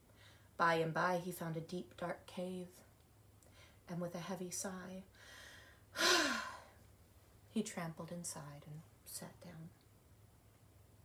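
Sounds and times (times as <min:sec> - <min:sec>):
woman sighing heavily: 0:05.9 - 0:06.7.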